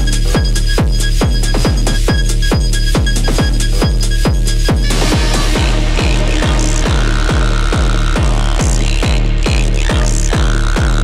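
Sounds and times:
hi-hats: 0:00.0 - 0:10.9
techno kick drum: 0:00.0 - 0:11.0.

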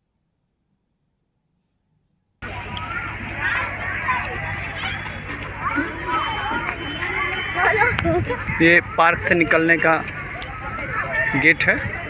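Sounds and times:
low steady rumble: 0:02.4 - 0:09.0
children and people chattering: 0:02.4 - 0:12.0.

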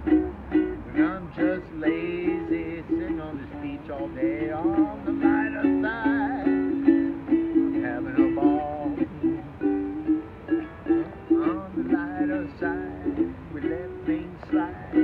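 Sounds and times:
ukulele strumming chords: 0:00.0 - 0:15.0.

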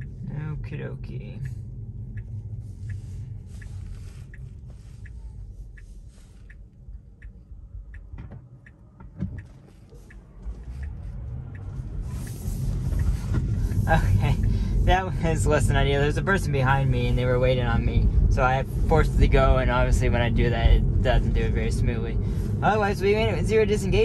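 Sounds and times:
car road noise: 0:00.0 - 0:24.0
low cabin rumble: 0:00.0 - 0:24.0
turn-signal indicator ticking: 0:00.0 - 0:24.0.

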